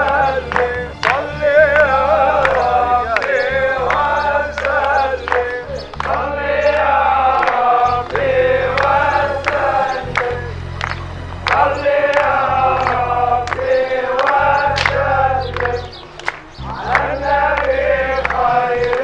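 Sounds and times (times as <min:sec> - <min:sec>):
choir chanting: 0:00.0 - 0:19.0
low steady drone: 0:00.0 - 0:19.0.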